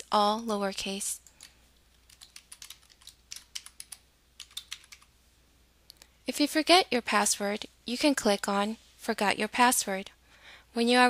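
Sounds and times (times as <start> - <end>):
computer keyboard typing: 1.2 - 5.1.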